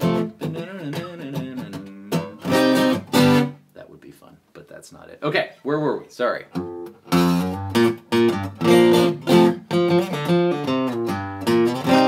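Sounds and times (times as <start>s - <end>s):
acoustic guitar strumming and melody: 0.0s - 3.7s, 6.5s - 12.0s.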